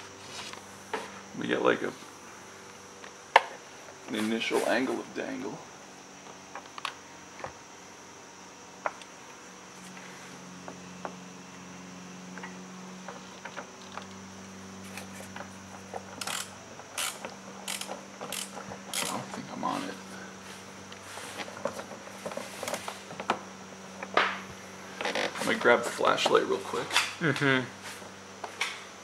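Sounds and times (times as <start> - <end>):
faint steady hum: 0.0 - 29.0
ratchet wrench clicking on metal: 16.2 - 19.3.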